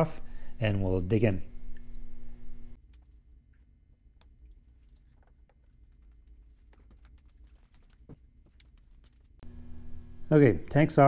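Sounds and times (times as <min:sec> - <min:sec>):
low steady hum: 0:00.0 - 0:11.0
hands clicking and knocking: 0:05.1 - 0:09.4.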